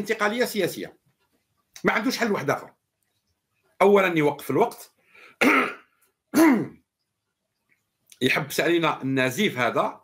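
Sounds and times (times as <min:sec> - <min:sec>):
man clearing his throat: 0:05.4 - 0:06.8.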